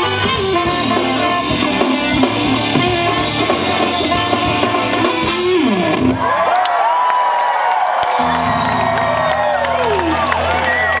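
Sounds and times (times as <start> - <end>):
funk band playing: 0.0 - 6.4, 8.2 - 11.0
crowd cheering: 5.6 - 11.0
low held note: 8.2 - 10.5
long sliding high notes: 8.2 - 11.0.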